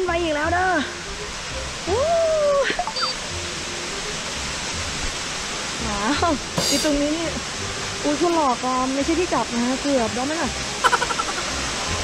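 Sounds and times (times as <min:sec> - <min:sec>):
waterfall rushing: 0:00.0 - 0:12.0.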